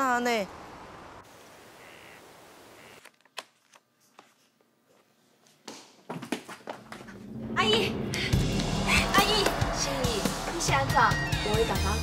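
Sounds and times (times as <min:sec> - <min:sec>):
outdoor background hiss: 0:00.0 - 0:05.5.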